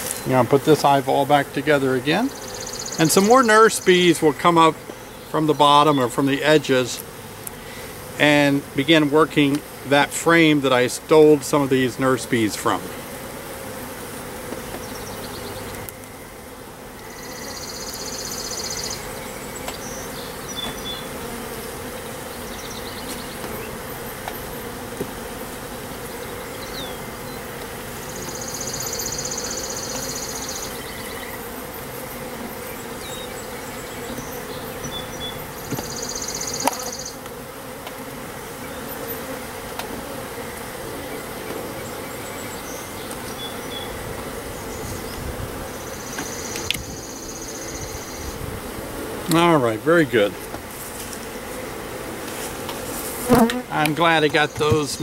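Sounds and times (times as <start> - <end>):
bees buzzing: 0.0 - 55.0.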